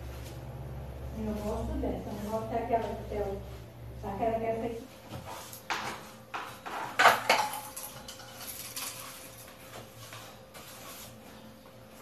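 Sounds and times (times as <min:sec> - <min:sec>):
broom sweeping a floor: 0:00.0 - 0:07.2, 0:08.3 - 0:12.0.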